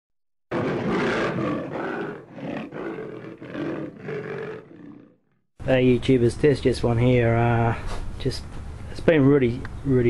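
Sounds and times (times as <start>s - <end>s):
big cat roaring: 0.5s - 5.3s.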